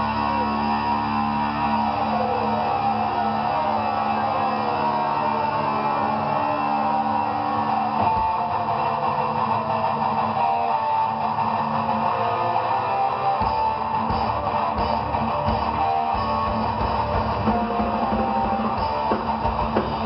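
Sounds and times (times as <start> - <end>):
heavy metal band playing live: 0.0 - 20.0.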